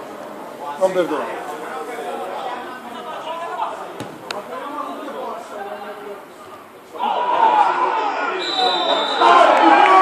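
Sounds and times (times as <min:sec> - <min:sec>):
spectators talking and calling out: 0:00.0 - 0:10.0.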